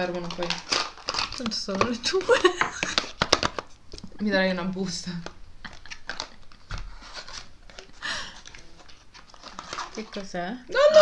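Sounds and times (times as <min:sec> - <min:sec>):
packaging crinkling and rustling: 0:00.0 - 0:04.1, 0:04.8 - 0:10.6.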